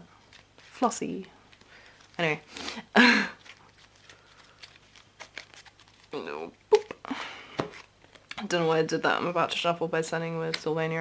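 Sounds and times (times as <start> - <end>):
cards being shuffled: 0.2 - 2.6, 3.3 - 6.9, 7.5 - 8.4.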